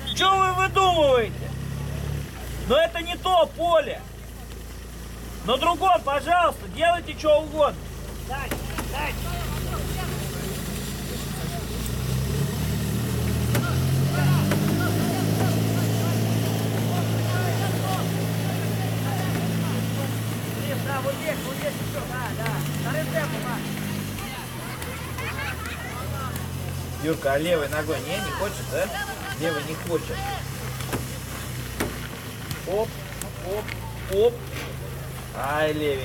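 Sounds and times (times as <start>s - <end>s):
distant shouting voices: 0.0s - 36.0s
motor engine humming: 0.0s - 36.0s.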